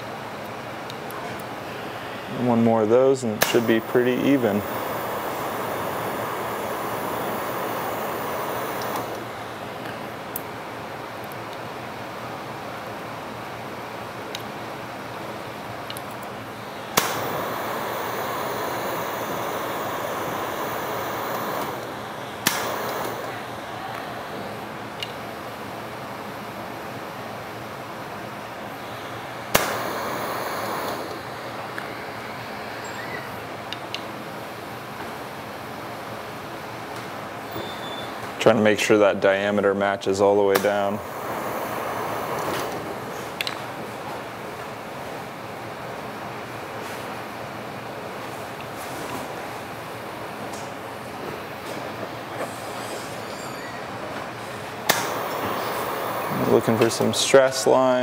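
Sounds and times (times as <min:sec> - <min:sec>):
torch flame hissing: 0:01.7 - 0:10.0, 0:16.7 - 0:24.4, 0:28.9 - 0:33.1, 0:40.5 - 0:43.4, 0:54.4 - 0:58.0.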